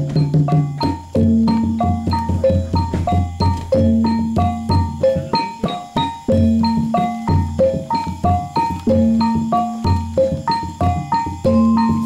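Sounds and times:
gongs and metallophones playing: 0.0 - 12.0.

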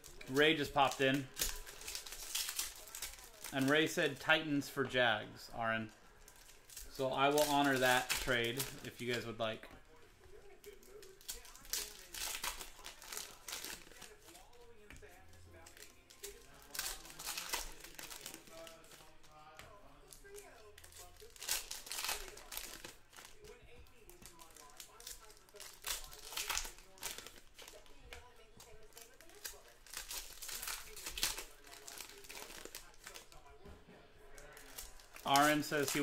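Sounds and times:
box packaging crinkling: 0.0 - 4.3, 10.4 - 14.7, 15.6 - 19.2, 20.1 - 33.6, 34.4 - 36.0.

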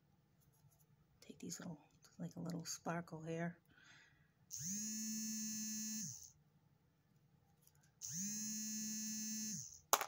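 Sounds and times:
small electric motor buzzing: 4.5 - 6.4, 8.0 - 9.8.

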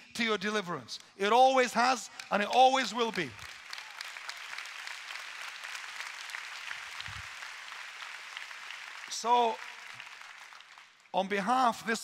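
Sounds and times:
crowd applauding: 2.0 - 11.1.

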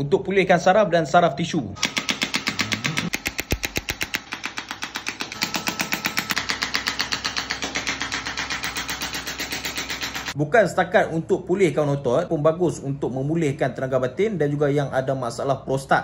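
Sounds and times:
rapid sharp clicks: 1.8 - 10.4.

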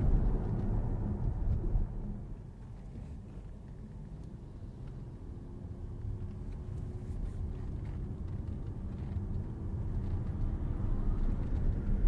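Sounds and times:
car road and drivetrain rumble: 0.0 - 12.0.

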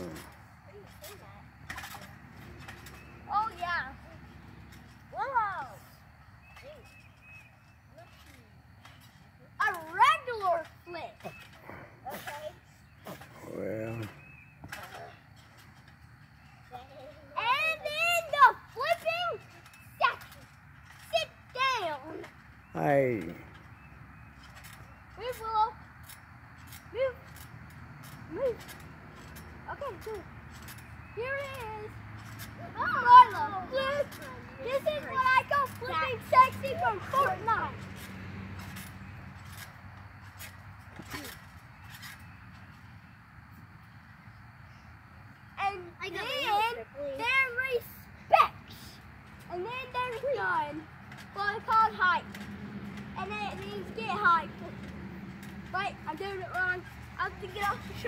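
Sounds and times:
trampoline springs clinking: 0.0 - 58.0.

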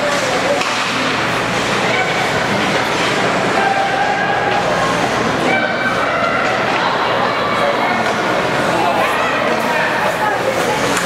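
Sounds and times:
spectators' voices: 0.0 - 11.0.

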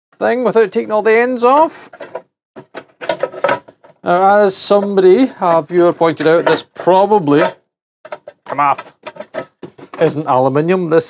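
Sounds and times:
knocks and clicks of casing: 8.1 - 10.0.

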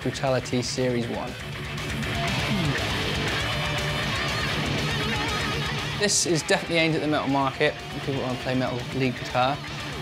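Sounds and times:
electric guitar metal lead: 0.0 - 10.0.

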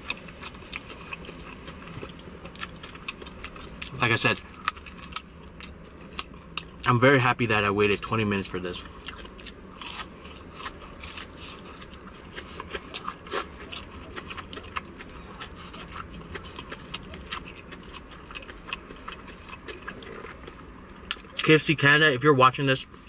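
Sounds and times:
crunching fried chicken: 0.0 - 21.8.

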